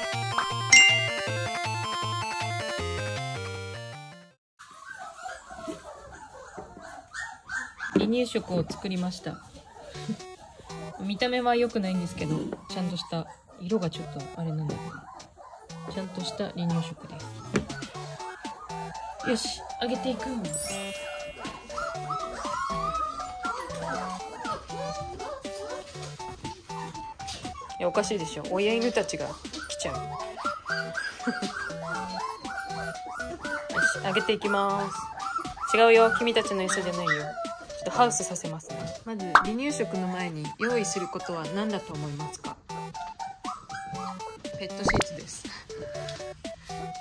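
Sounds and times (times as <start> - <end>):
game-style music jingle: 0.0 - 4.3, 20.6 - 22.9
background music with plinking melody: 0.0 - 4.4, 9.2 - 47.0
dogs whining: 4.6 - 47.0
puppies whimpering and yelping: 4.6 - 47.0.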